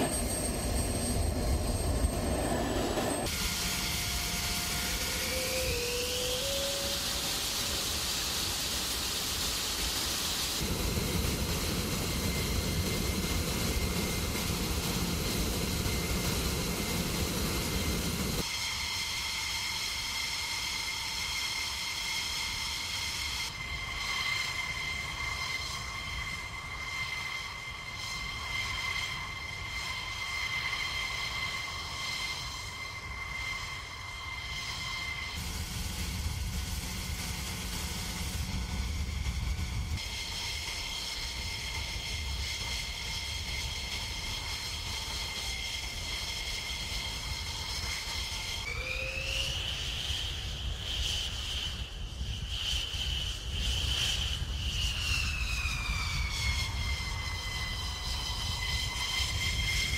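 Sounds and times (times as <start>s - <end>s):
jet turbine whine: 0.0s - 59.9s.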